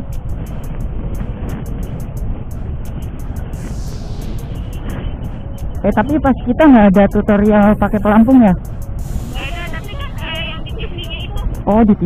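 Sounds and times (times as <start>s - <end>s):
low vehicle rumble: 0.0s - 12.0s
ticking background music: 0.0s - 12.0s.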